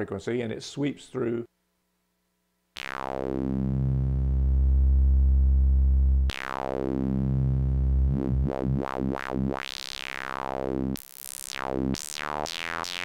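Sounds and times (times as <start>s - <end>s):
synthesizer note filter sweep: 2.8s - 13.0s.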